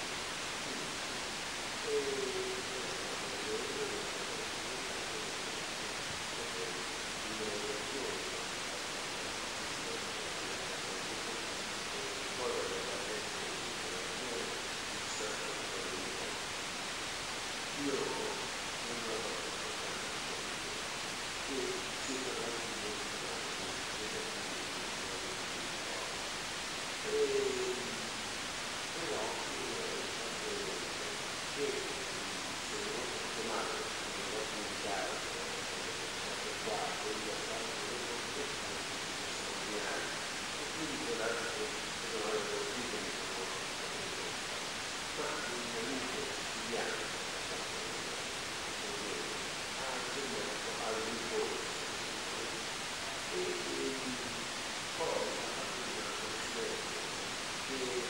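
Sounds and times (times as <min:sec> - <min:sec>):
muffled distant speech: 0:00.0 - 0:26.3, 0:27.0 - 0:28.2, 0:28.8 - 0:58.0
recording hiss: 0:00.0 - 0:58.0.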